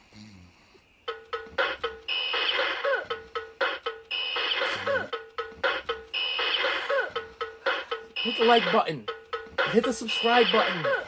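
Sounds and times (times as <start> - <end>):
toy drumbeats: 1.0 - 11.0.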